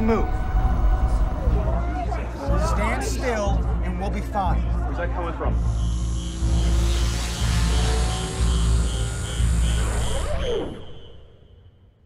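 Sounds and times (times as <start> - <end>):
throbbing low drone: 0.0 - 2.8.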